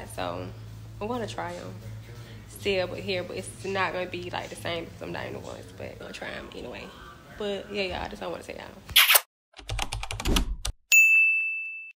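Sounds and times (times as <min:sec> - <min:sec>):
notification bell ding: 0:10.9 - 0:12.0.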